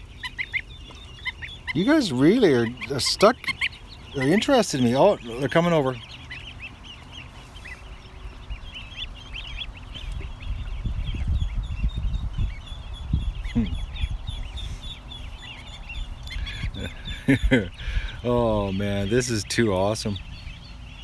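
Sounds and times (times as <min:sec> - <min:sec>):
ducklings peeping: 0:00.0 - 0:21.0.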